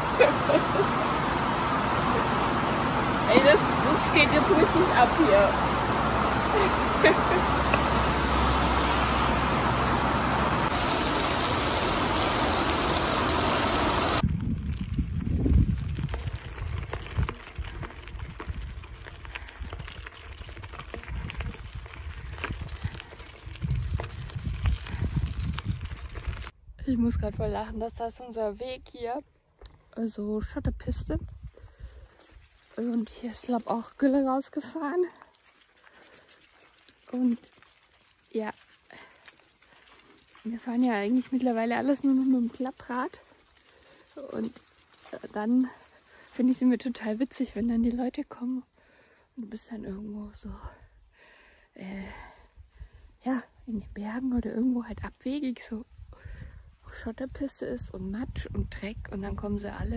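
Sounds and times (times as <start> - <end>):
heavy rain pouring: 0.0 - 14.4.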